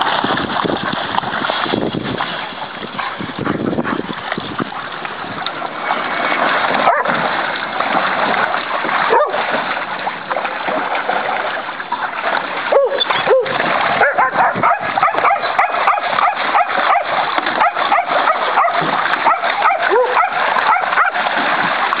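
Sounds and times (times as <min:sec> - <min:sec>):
water splashing in a pool: 0:00.0 - 0:22.0
dogs barking and yipping: 0:06.8 - 0:07.2, 0:09.0 - 0:09.5, 0:12.7 - 0:21.3
dog yelping: 0:06.9 - 0:07.1, 0:12.7 - 0:21.2.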